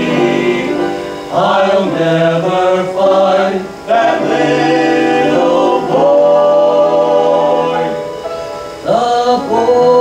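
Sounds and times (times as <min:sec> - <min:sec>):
men singing barbershop harmony: 0:00.0 - 0:08.1, 0:08.8 - 0:10.0.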